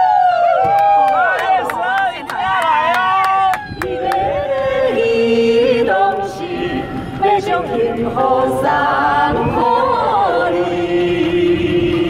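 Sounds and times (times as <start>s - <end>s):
people singing into microphones: 3.7s - 12.0s.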